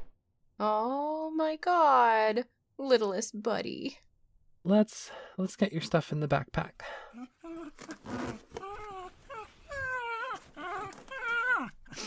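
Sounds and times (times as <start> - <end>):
dog whining: 7.2 - 12.0.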